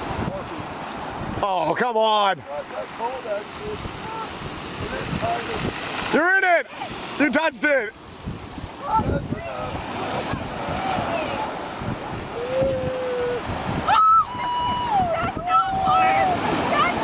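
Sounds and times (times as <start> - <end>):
surf washing up pebble beach: 0.0 - 17.0
wind on microphone: 3.6 - 6.2, 8.0 - 17.0
people crying out: 12.3 - 17.0.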